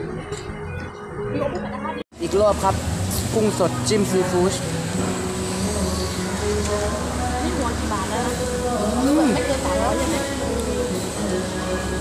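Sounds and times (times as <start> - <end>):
faint voices: 3.6 - 12.0.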